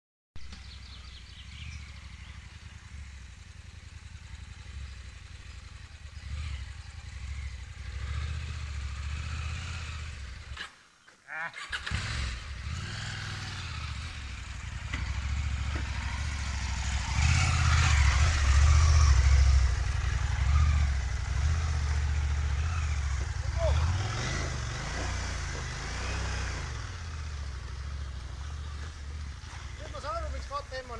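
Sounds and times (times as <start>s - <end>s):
motorcycle engine revving in mud: 0.5s - 10.8s, 11.6s - 30.9s.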